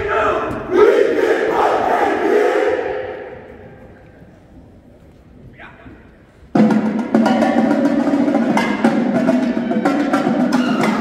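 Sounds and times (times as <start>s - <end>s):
group shouting a held yell: 0.0s - 3.3s.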